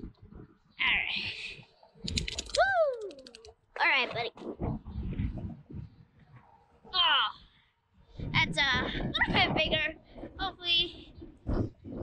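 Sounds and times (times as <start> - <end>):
rattle of clicks: 2.0 - 3.6.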